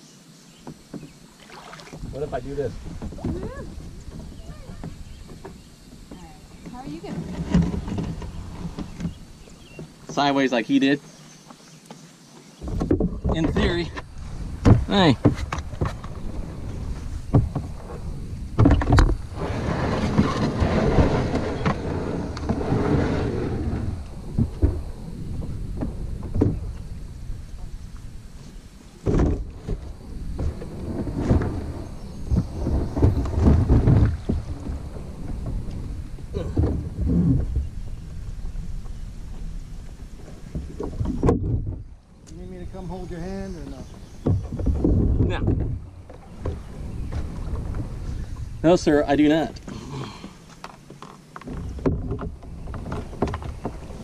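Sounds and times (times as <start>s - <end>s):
paddle splashing water: 0.5s - 54.0s
water washing along hull: 0.6s - 54.0s.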